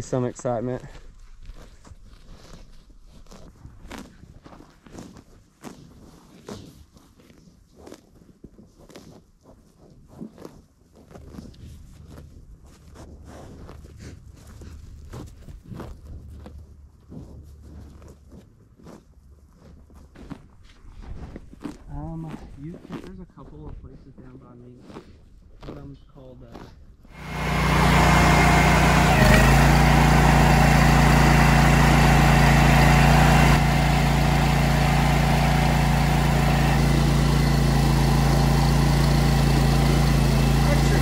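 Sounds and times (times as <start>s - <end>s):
soft hoof steps on turf: 0.1s - 26.8s
grass being torn and chewed: 0.4s - 27.0s.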